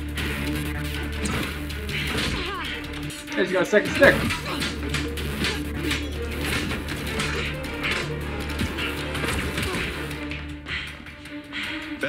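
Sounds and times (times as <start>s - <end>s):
stick fight hits and swishes: 1.1s - 11.4s.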